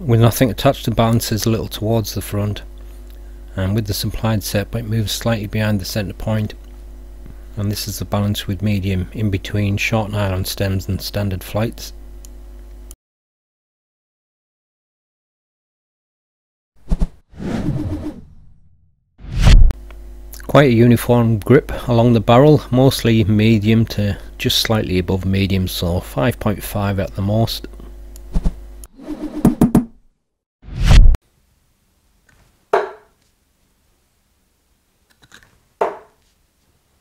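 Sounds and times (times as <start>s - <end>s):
whoosh sound effects: 19.2s - 19.7s, 30.7s - 31.2s
darts thudding into dartboard: 32.8s - 33.1s, 35.8s - 36.2s.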